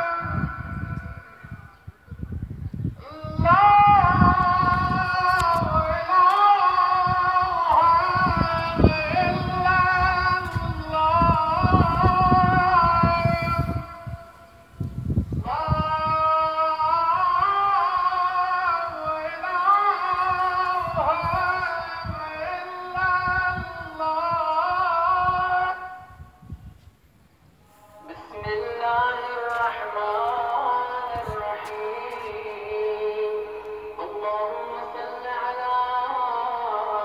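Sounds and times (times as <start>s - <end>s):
person singing or chanting: 0.0s - 26.3s, 27.6s - 37.0s.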